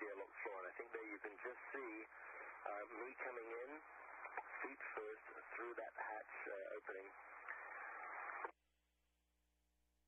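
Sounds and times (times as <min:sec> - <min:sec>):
voice over radio: 0:00.0 - 0:07.6
radio hiss: 0:00.0 - 0:08.5.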